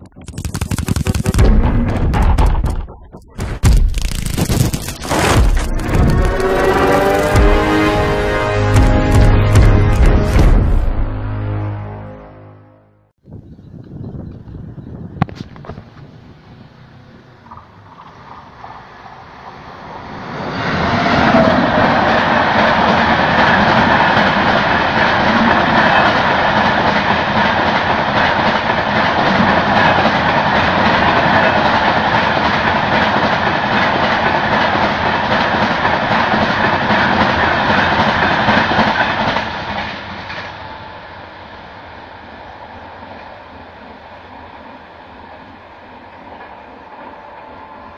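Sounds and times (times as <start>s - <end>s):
train wheels rushing on rail: 5.5s - 10.7s, 15.5s - 47.9s
clickety-clack of coaches: 21.8s - 40.5s.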